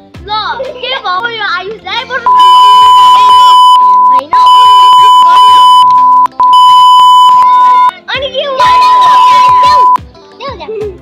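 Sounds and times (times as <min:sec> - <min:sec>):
censor bleep: 0:02.3 - 0:07.9, 0:08.8 - 0:10.0.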